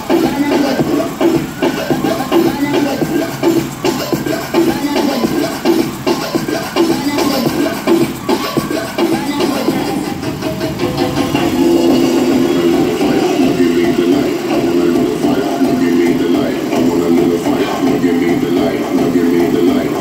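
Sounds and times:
loud dance music on speakers: 0.0s - 20.0s.

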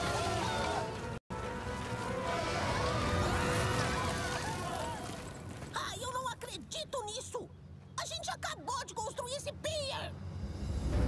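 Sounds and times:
dramatic orchestral film score: 9.7s - 11.0s.

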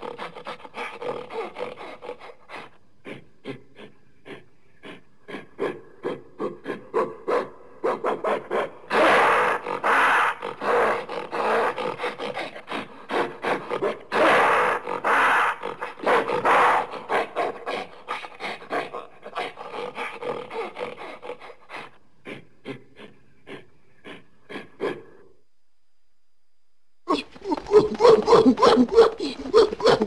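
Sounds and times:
animal-like huffs and grunts: 0.0s - 7.3s, 8.5s - 25.3s, 27.1s - 30.0s.

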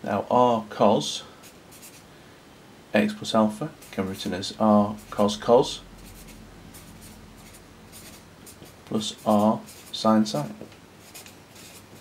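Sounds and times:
marker pen scratching on paper: 1.4s - 2.0s, 6.0s - 12.0s.

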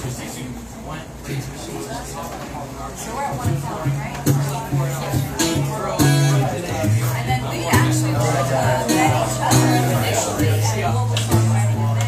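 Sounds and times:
acoustic guitar strumming chords: 3.4s - 12.0s
low bass notes: 3.4s - 12.0s.

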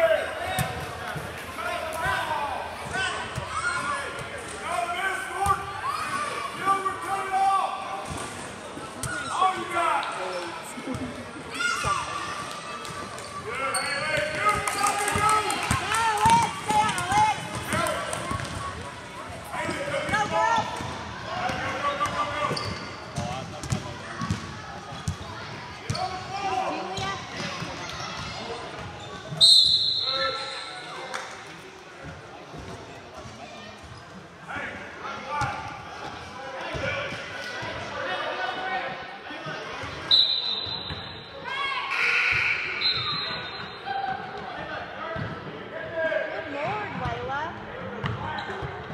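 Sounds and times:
voices echoing in a gymnasium: 0.0s - 48.9s.

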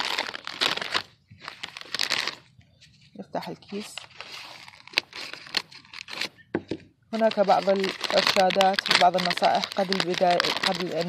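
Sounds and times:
packaging crinkling and rustling: 0.0s - 6.4s, 7.2s - 11.0s.

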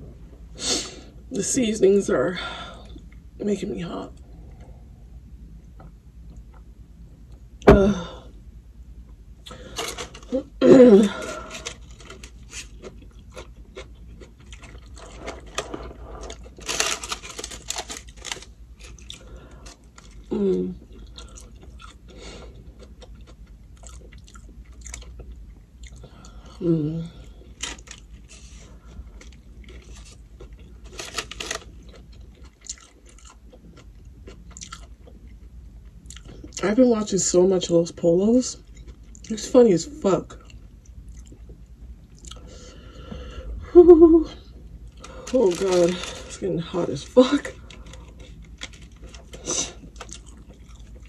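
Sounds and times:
chewing and biting food: 11.4s - 26.6s, 27.4s - 36.6s, 40.4s - 42.4s, 47.5s - 51.0s.

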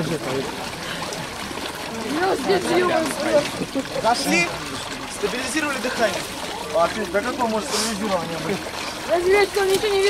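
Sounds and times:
water sloshing and trickling: 0.0s - 10.0s.

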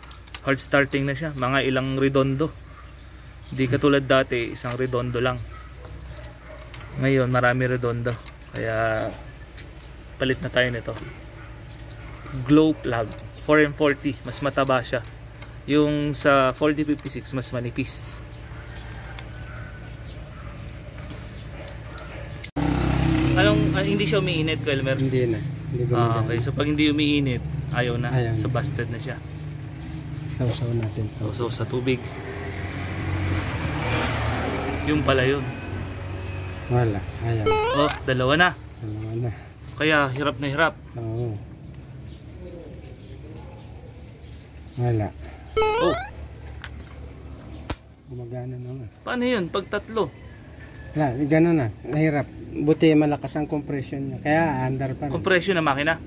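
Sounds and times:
sharp metallic click: 47.6s - 47.9s.

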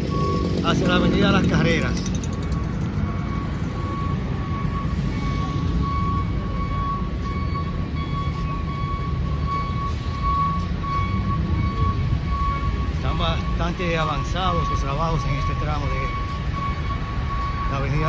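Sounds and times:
city street traffic rumble: 0.0s - 18.0s.

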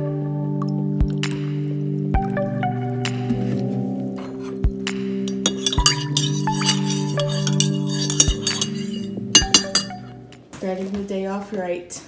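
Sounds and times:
background music: 0.0s - 10.6s
teaspoon clinking against mug: 5.3s - 10.1s.

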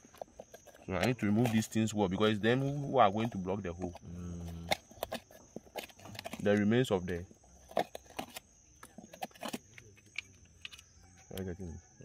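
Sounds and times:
fingers scraping debris from wood: 0.0s - 10.9s.

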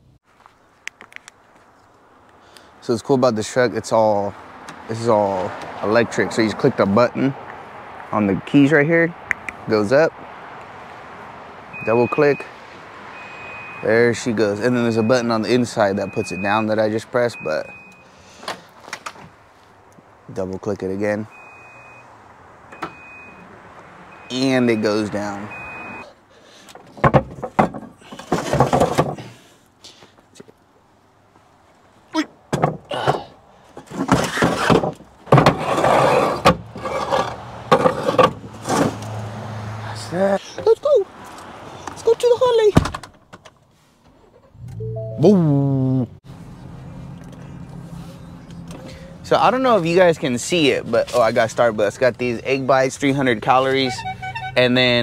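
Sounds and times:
tailgate warning beeps: 11.7s - 12.5s, 13.1s - 13.9s, 14.7s - 16.7s, 17.3s - 18.1s, 21.3s - 23.5s, 24.1s - 26.1s, 44.6s - 45.4s, 53.7s - 54.8s
short rising tone: 44.6s - 46.2s.

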